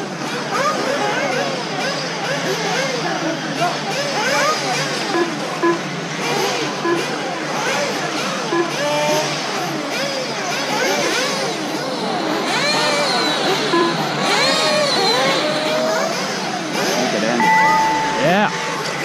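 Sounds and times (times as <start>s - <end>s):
steady tone: 13.8s - 14.1s, 17.4s - 19.0s.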